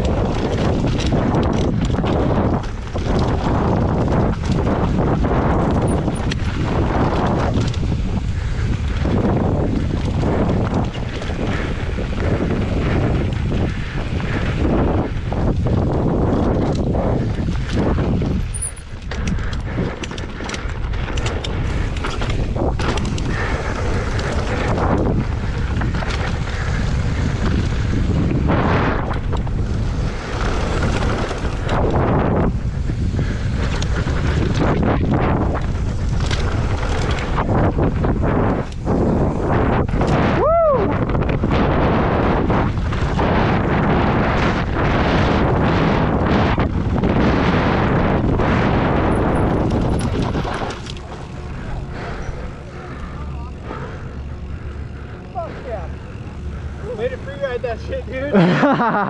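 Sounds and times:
bike tyres rolling over dirt and rock: 0:00.0 - 0:59.0
wind on camera microphone: 0:00.0 - 0:59.0.

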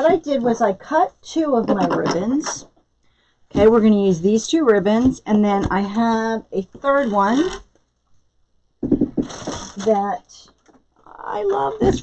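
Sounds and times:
woman speaking: 0:00.0 - 0:02.7, 0:03.5 - 0:07.6, 0:09.7 - 0:12.0.

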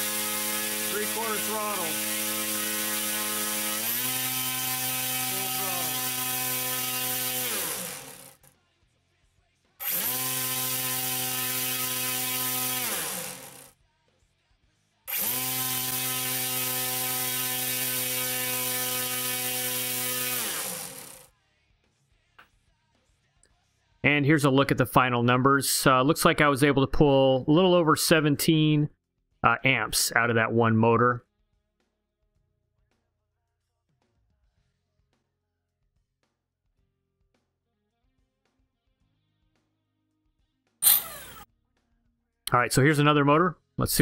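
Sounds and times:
electric motor and propeller whine: 0:00.0 - 0:08.4, 0:09.8 - 0:13.7, 0:15.1 - 0:21.3, 0:40.8 - 0:41.5.

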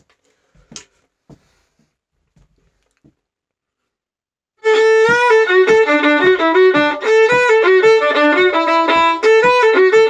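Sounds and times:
violin handling knocks and rustles: 0:04.7 - 0:10.0.

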